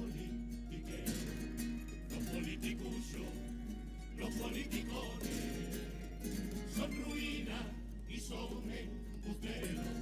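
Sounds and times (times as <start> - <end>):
plucked-string band playing: 0.0 - 10.0.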